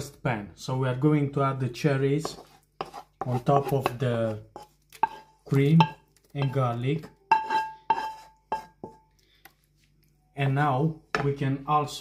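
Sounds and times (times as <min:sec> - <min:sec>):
tomatoes scraped between pans: 0:01.9 - 0:10.2.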